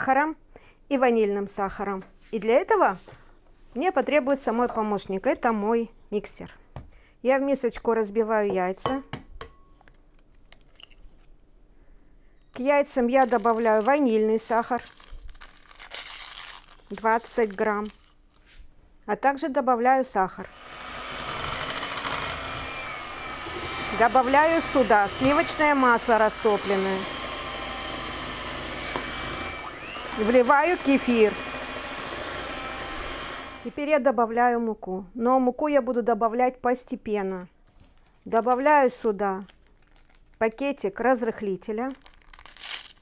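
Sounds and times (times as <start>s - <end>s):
electric hand mixer whisking: 20.5s - 33.8s.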